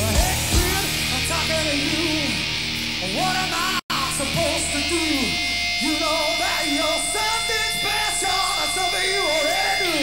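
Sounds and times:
man singing into a microphone: 0.0 - 2.4, 3.0 - 10.0.

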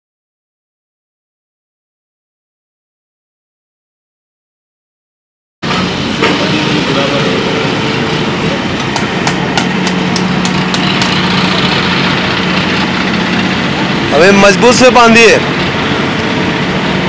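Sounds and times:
pump rushing with low hum: 5.6 - 17.0.

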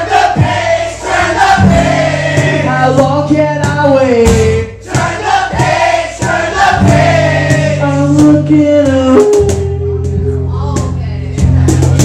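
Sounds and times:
men singing: 0.0 - 12.0
strummed acoustic guitar: 0.0 - 12.0.

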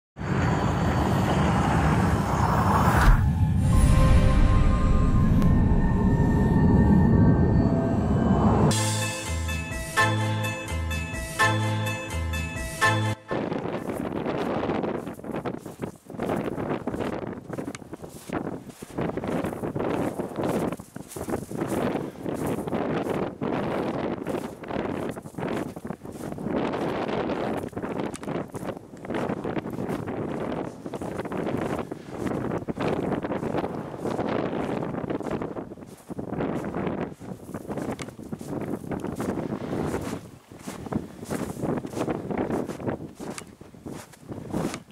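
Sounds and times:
wind buffeting microphone: 13.3 - 44.9.

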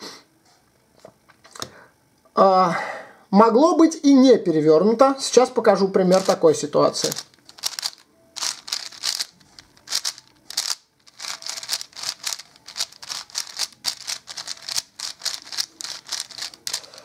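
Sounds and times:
puzzle cube clicking turns: 7.0 - 17.0.

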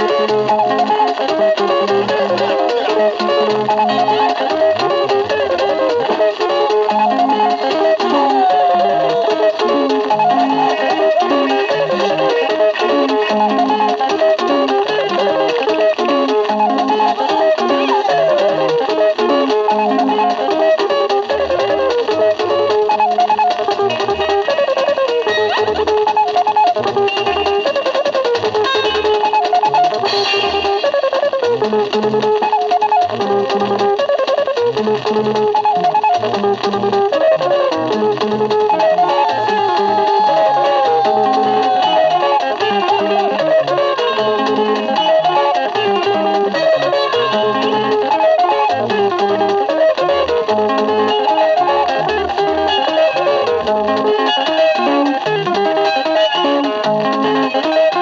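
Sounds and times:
guitar-led dance music: 0.0 - 58.0
bass line: 36.2 - 54.1.

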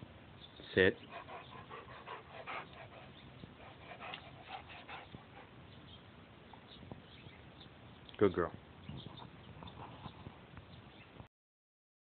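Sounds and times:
dog breathing quickly: 1.0 - 5.6.

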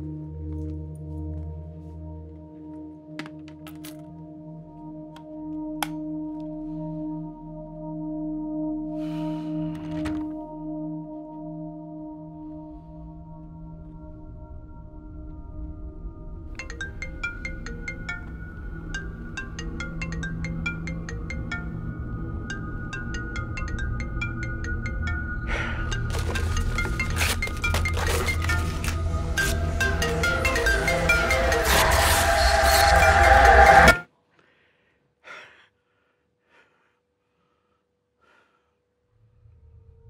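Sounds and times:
low drone: 4.3 - 34.1
man breathing: 8.9 - 10.0, 34.3 - 39.0
chiming phone ringtone: 16.6 - 34.0
loud music: 25.9 - 34.0.

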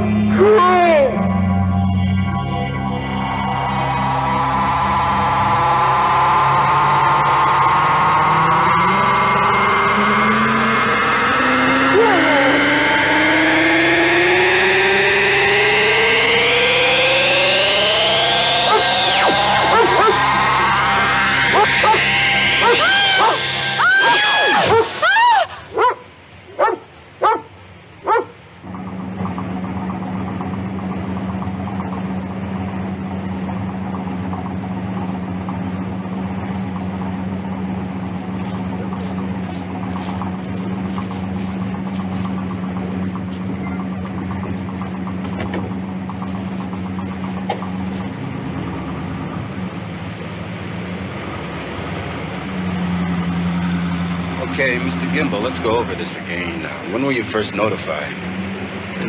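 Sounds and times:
low hum with held tone: 0.0 - 57.3
dog barking: 19.7 - 20.2, 21.6 - 22.0, 25.8 - 26.0, 26.6 - 28.4.

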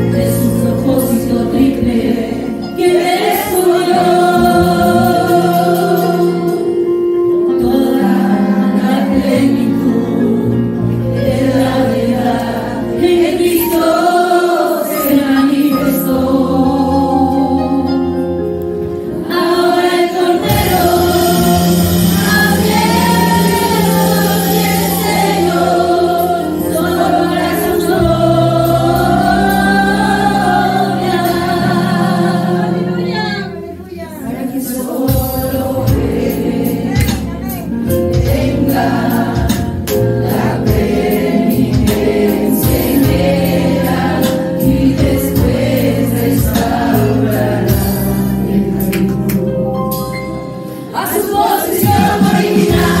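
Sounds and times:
women singing worship song: 0.0 - 6.9, 7.5 - 18.3, 19.1 - 49.5, 50.8 - 53.0.

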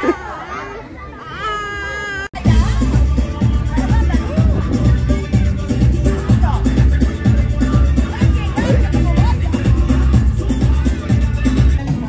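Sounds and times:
young child crying: 0.0 - 2.4
dance music with heavy bass: 2.4 - 12.0.

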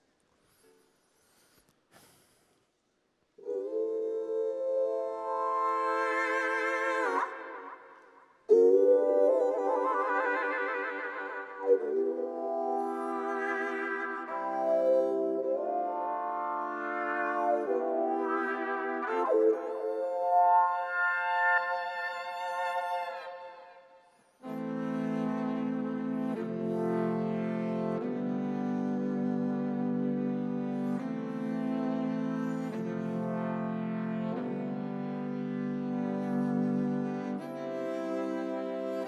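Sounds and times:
electric violin bowed notes: 24.4 - 39.0.

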